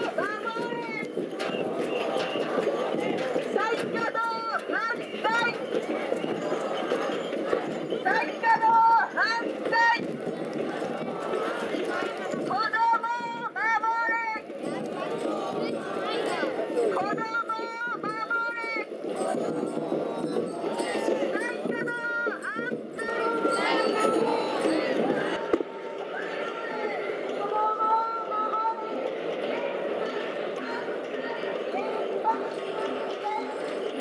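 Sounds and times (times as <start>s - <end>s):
outdoor background noise: 0.0s - 34.0s.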